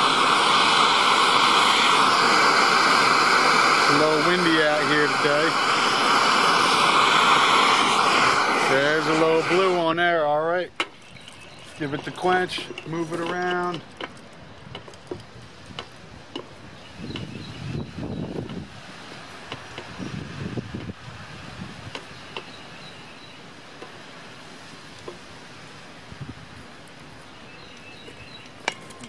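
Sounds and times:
faint outdoor background noise: 0.0s - 29.0s.

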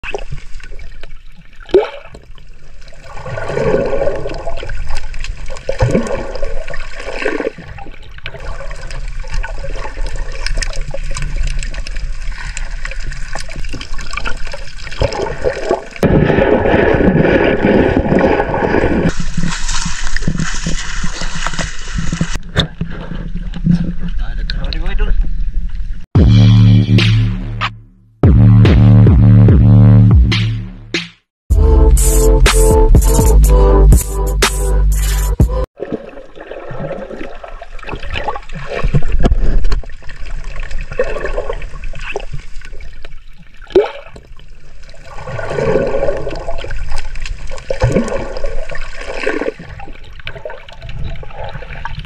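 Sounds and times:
bubbles: 0.0s - 22.4s, 35.8s - 52.0s
water rushing and gurgling underwater: 0.0s - 26.1s, 35.7s - 52.0s.

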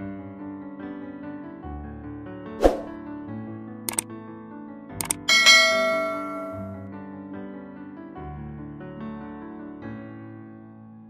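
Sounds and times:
soft piano music: 4.4s - 11.0s
pair of clicks: 5.0s - 5.3s
bright bell ding: 5.0s - 6.8s.

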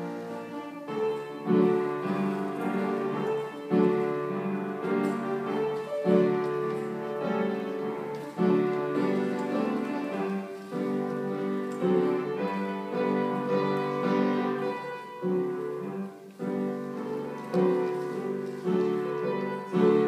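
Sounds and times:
slow piano chords: 0.0s - 20.0s.

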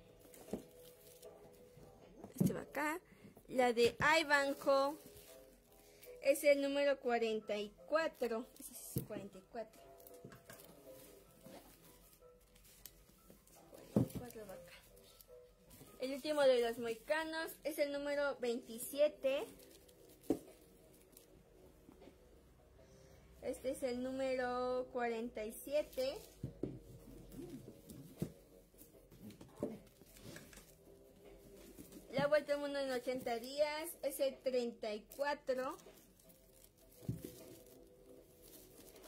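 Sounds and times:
plastic-wrapped books handled: 0.0s - 2.9s, 3.6s - 6.8s, 8.1s - 17.7s, 18.6s - 21.6s, 25.7s - 34.2s, 35.0s - 39.0s.

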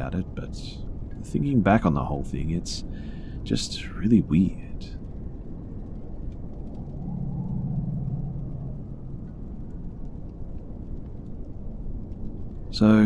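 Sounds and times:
low humming tone: 0.0s - 13.0s
steady low rumble: 0.0s - 13.0s
faint ticks: 4.9s - 13.0s.

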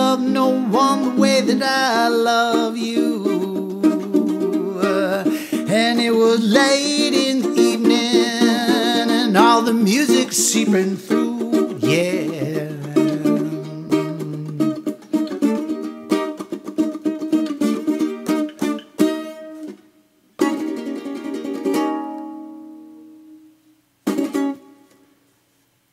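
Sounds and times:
man singing held note: 0.0s - 14.9s
ukulele strumming: 0.0s - 25.3s.

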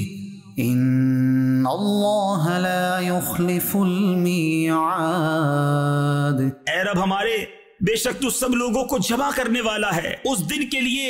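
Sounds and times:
melodic chanted recitation: 0.0s - 9.6s.

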